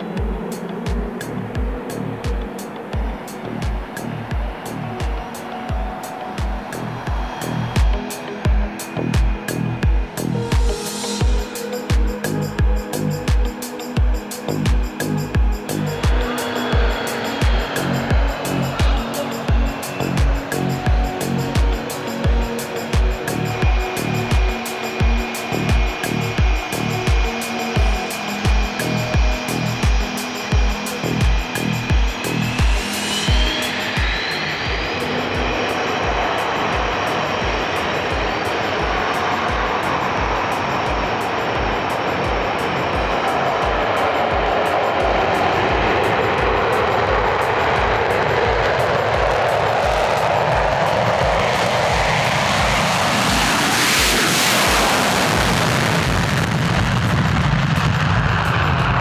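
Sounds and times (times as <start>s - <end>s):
jet engines spooling up: 0.0s - 59.0s
music with steady beat: 0.0s - 59.0s.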